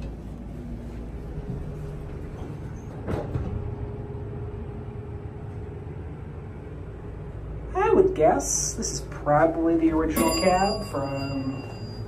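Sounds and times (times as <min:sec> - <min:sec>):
elevator hum and rumble: 0:00.0 - 0:12.0
elevator thump: 0:02.2 - 0:04.0.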